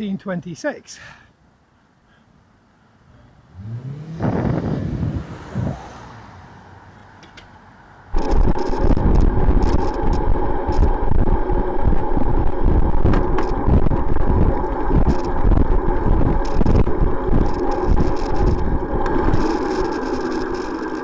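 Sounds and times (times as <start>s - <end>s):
tyre and road noise: 3.2s - 21.0s
wind buffeting microphone: 4.2s - 6.0s, 8.2s - 20.6s.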